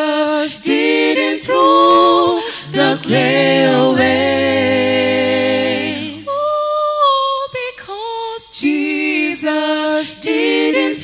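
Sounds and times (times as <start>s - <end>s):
a cappella ensemble singing: 0.0s - 11.0s.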